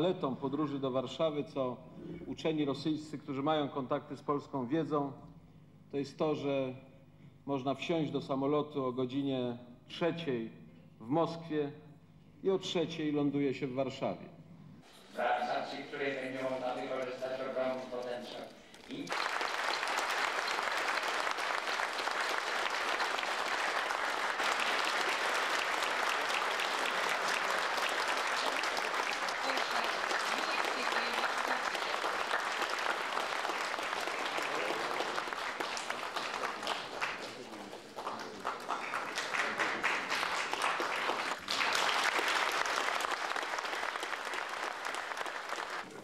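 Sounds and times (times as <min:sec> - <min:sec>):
audience applauding: 0:18.8 - 0:46.0.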